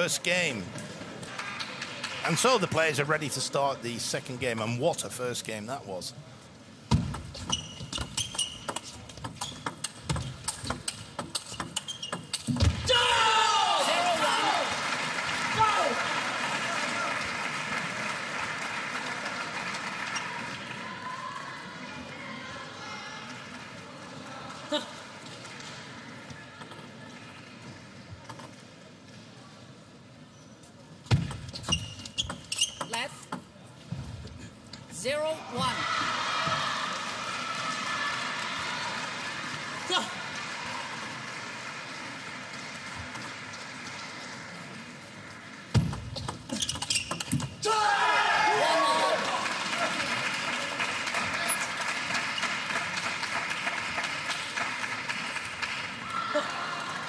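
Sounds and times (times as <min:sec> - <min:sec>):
arena crowd noise: 0:00.0 - 0:07.2, 0:12.8 - 0:31.1, 0:33.5 - 0:46.6, 0:47.6 - 0:57.0
crowd cheering and shouting: 0:12.8 - 0:14.8, 0:15.4 - 0:17.1, 0:35.4 - 0:39.2, 0:47.6 - 0:50.0, 0:56.0 - 0:57.0.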